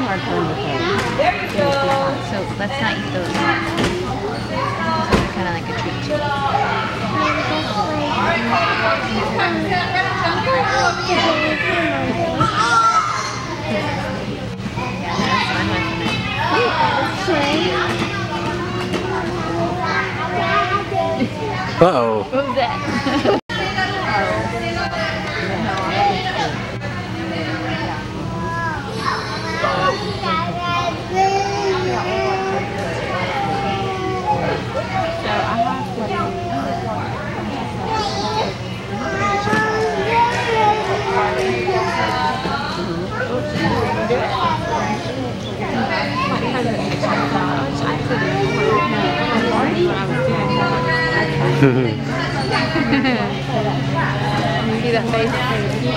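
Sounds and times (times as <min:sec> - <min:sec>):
children talking and calling out: 0:00.0 - 0:55.9.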